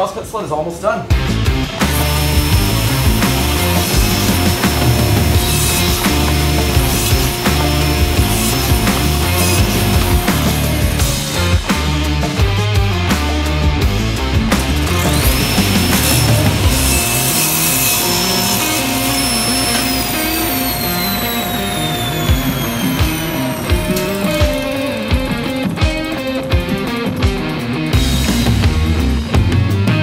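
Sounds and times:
rock music with electric guitar: 0:01.1 - 0:30.0
table saw motor whine: 0:01.8 - 0:11.5, 0:14.5 - 0:27.2.

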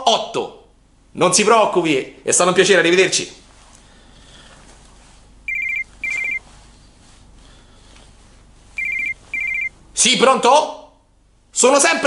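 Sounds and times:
telephone ringing electronic trill: 0:05.5 - 0:06.4, 0:08.8 - 0:09.8.

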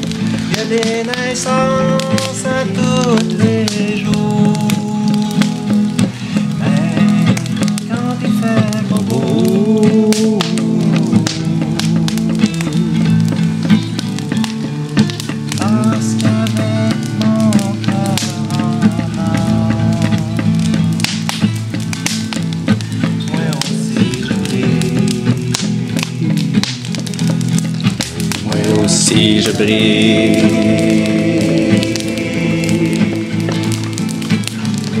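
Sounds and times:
person singing: 0:00.0 - 0:21.2, 0:23.0 - 0:27.3, 0:28.0 - 0:35.0
acoustic guitar strumming: 0:00.0 - 0:35.0.

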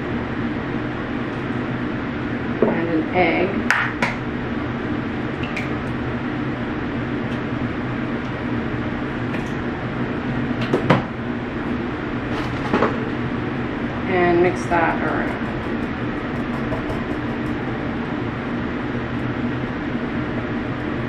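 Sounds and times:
steady low mechanical hum: 0:00.0 - 0:21.0
kitchen knocks: 0:16.4 - 0:17.5.

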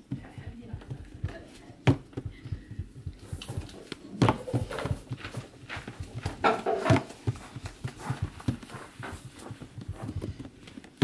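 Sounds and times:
hands patting dough on wood: 0:00.0 - 0:11.0.

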